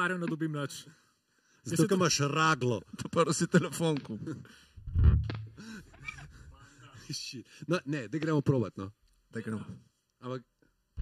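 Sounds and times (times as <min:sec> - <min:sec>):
electric bass note: 0:04.8 - 0:05.5.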